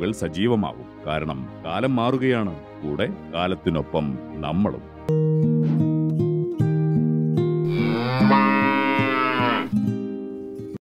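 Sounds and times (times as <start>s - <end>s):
plucked guitar jingle: 5.1s - 10.0s
cow mooing: 7.7s - 9.7s.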